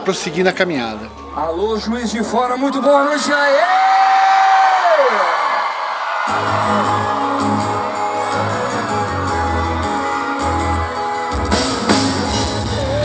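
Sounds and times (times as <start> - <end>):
crowd cheering: 1.0 - 13.0
electric guitars: 6.2 - 13.0
bass notes: 6.3 - 13.0.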